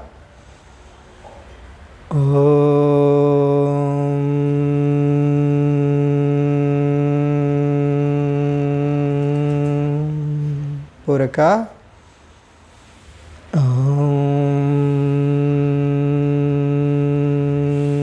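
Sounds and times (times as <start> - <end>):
man chanting one low note: 2.1 - 11.8, 13.5 - 18.0.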